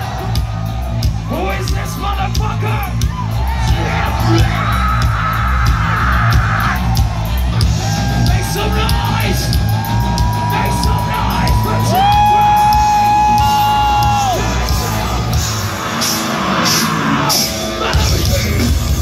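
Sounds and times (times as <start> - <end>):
shouted vocals: 0.0 - 15.4
bass guitar: 0.0 - 19.0
distorted guitars: 0.0 - 19.0
drums: 0.0 - 19.0.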